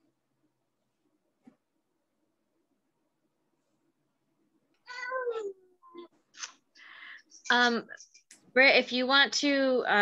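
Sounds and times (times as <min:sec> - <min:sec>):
cat meowing: 0:04.9 - 0:06.0.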